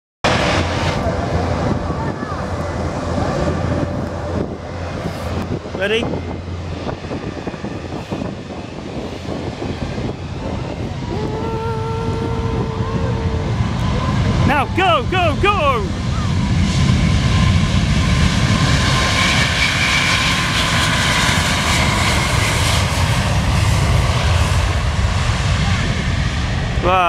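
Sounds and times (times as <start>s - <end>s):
jet engines rumbling: 0.2s - 27.0s.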